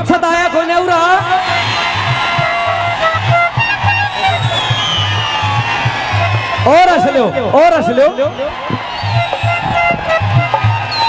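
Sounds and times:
dholak drum beat: 0:00.0 - 0:11.0.

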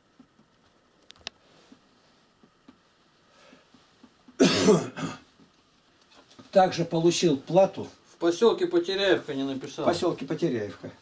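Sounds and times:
man coughing: 0:04.4 - 0:05.2.

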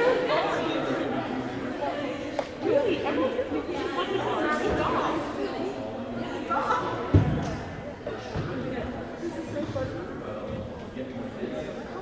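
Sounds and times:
echoing chatter of voices: 0:00.0 - 0:12.0.

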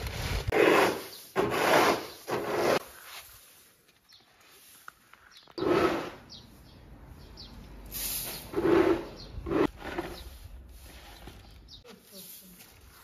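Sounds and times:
broom sweeping grain: 0:00.0 - 0:05.0, 0:07.9 - 0:08.9, 0:10.2 - 0:13.0.

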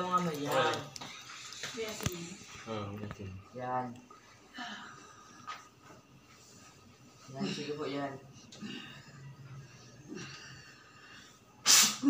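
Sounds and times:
forceful burst of breath: 0:11.6 - 0:12.0.

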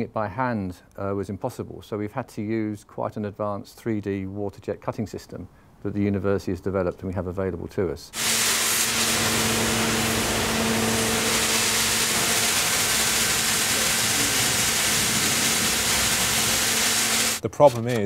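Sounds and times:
high-pressure water jet hiss: 0:08.2 - 0:17.4
low machine hum: 0:08.2 - 0:17.4.

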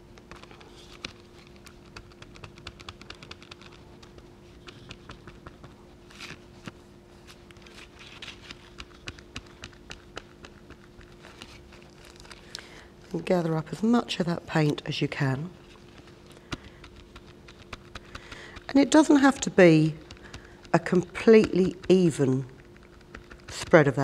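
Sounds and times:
sponge dabbing on plastic: 0:00.2 - 0:12.4, 0:15.6 - 0:24.0.

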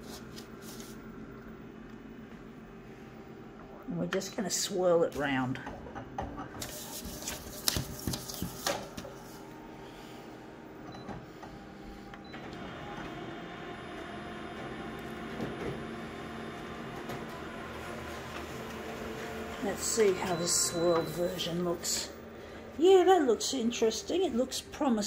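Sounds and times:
paper rustling: 0:00.0 - 0:01.0, 0:06.6 - 0:09.4
copier whirring: 0:06.5 - 0:25.0.

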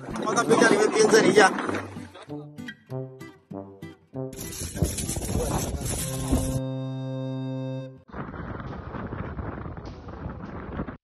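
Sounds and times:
held music chord: 0:06.0 - 0:08.1.

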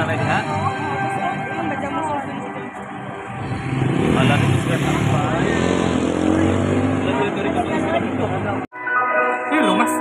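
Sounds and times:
people's voices: 0:00.0 - 0:08.7.

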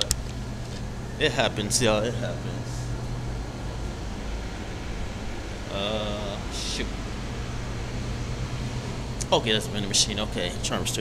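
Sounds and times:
steady low hum: 0:00.0 - 0:11.0
even hiss: 0:05.7 - 0:11.0.

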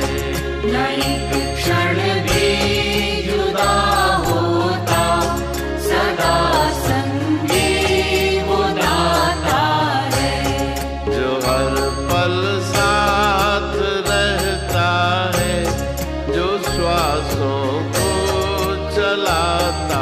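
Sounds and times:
devotional song with percussion: 0:00.0 - 0:20.0.

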